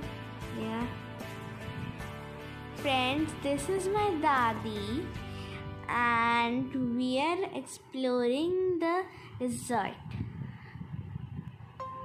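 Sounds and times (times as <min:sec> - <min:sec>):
music: 0:00.0 - 0:12.0
wind rumble on microphone: 0:09.2 - 0:12.0.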